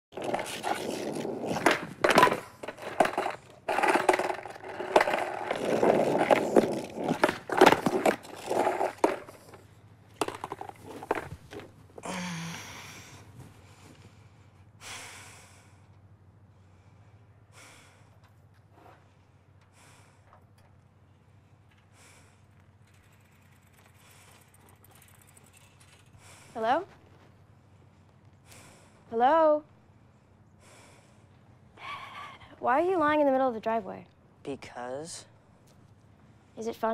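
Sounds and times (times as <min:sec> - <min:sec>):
skateboard rolling on concrete: 0:00.1 - 0:14.3, 0:17.6 - 0:29.7
skateboard clacks and slaps: 0:00.2 - 0:09.6.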